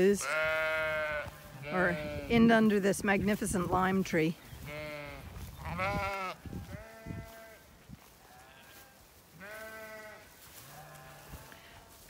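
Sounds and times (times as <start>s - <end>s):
sheep bleating: 0.0s - 2.5s, 4.6s - 7.6s, 8.2s - 12.0s.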